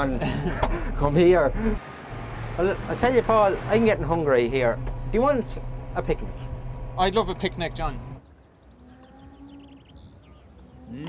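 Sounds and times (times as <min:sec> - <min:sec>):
faint birds chirping: 0:04.9 - 0:11.0.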